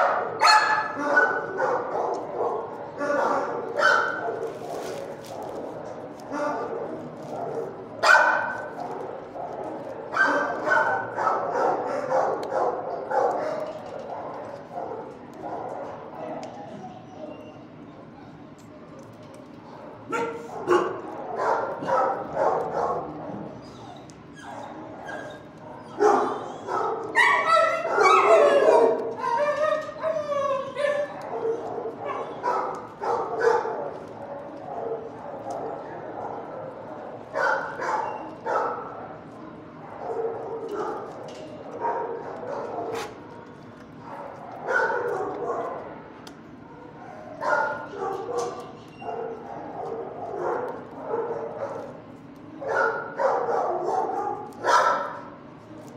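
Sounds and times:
dogs barking: 0.0 - 17.3, 19.6 - 55.6
dogs yelping and whining: 16.3 - 18.4, 19.7 - 38.9, 46.9 - 51.9.

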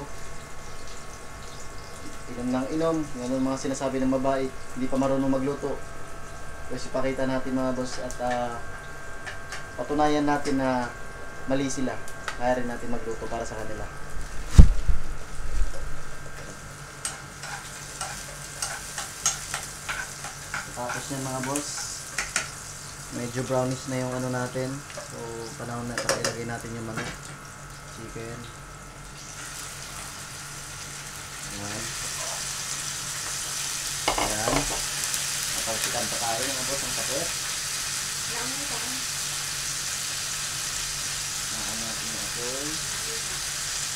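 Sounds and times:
onions frying in oil: 0.0 - 43.9.

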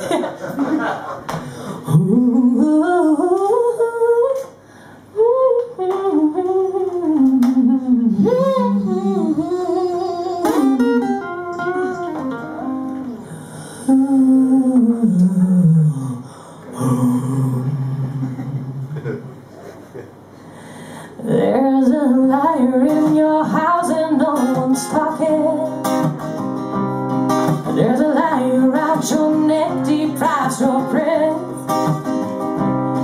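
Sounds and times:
person humming a melody: 5.2 - 12.1, 13.8 - 19.1
soft acoustic guitar: 5.8 - 19.3, 21.2 - 33.0.

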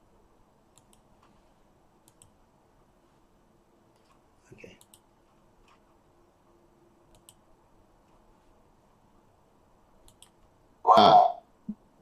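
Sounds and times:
faint sharp clicks: 0.7 - 1.4, 2.0 - 2.4, 7.1 - 7.4.

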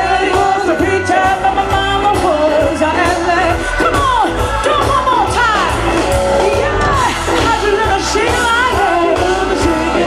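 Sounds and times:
bass guitar: 0.0 - 10.0
electric guitar: 0.0 - 10.0
steady drum beat: 0.0 - 10.0
woman singing: 0.0 - 10.0.

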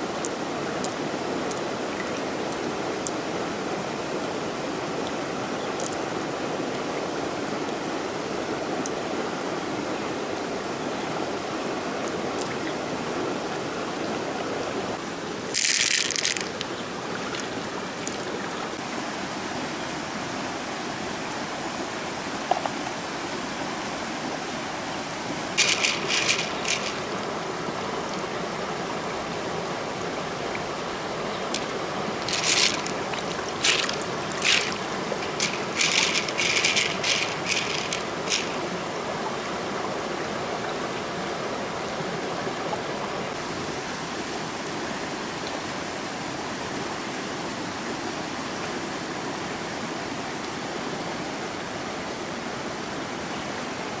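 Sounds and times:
river running over stones: 0.0 - 54.0
sharp clicks and splashes: 5.8 - 6.0, 15.5 - 18.5, 25.6 - 27.2, 31.3 - 38.7.

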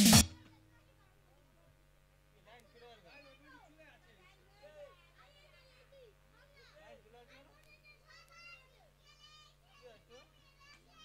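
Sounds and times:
distant children's voices: 0.3 - 1.8, 2.6 - 11.0.

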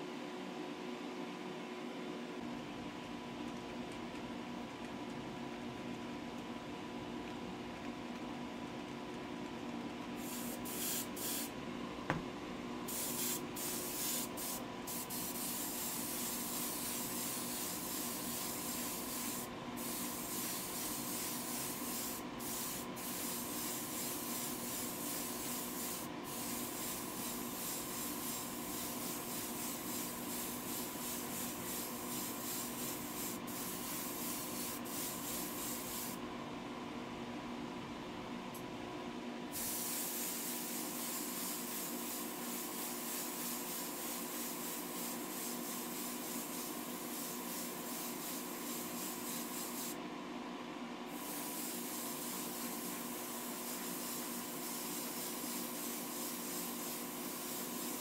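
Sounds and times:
extraction fan hum: 0.0 - 58.0
airbrush spraying hiss: 10.2 - 11.5, 12.9 - 36.2, 39.5 - 50.0, 51.1 - 58.0.

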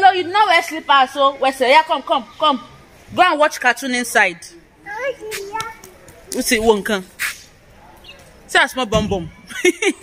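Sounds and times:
young child chattering: 4.8 - 6.0.

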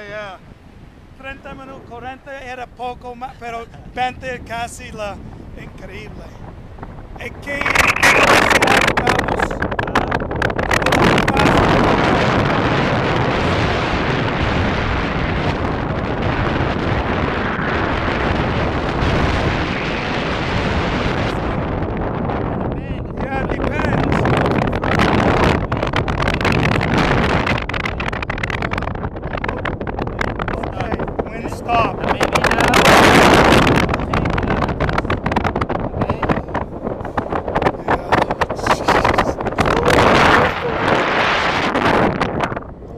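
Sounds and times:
wind buffeting microphone: 0.0 - 42.9
voices: 7.2 - 10.2, 22.8 - 27.2, 27.9 - 35.1, 35.8 - 41.4.

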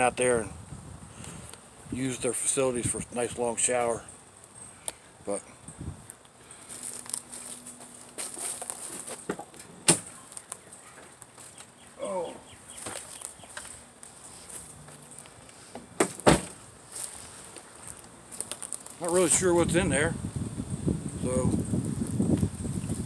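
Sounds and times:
sharp knocks of plastic crate: 15.8 - 16.6.

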